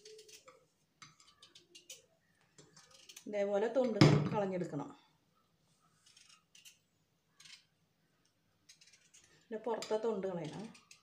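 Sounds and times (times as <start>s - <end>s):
knife scraping shallot skin: 0.0s - 3.3s, 5.8s - 7.7s, 8.6s - 11.0s.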